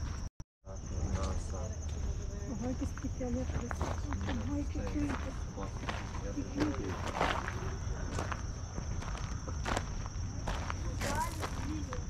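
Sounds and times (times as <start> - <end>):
footsteps on gravel: 3.0 - 12.0.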